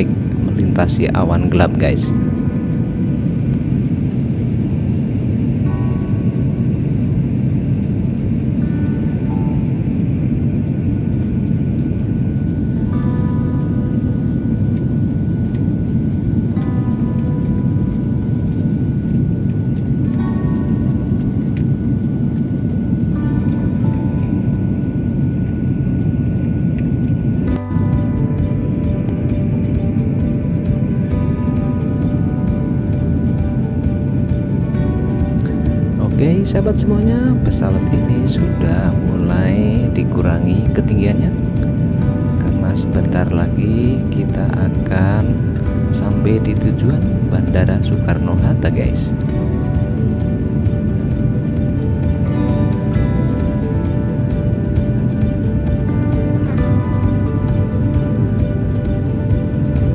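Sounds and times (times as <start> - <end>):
jet engine roar in cabin: 0.0 - 59.9
soft melodic music: 0.0 - 59.9.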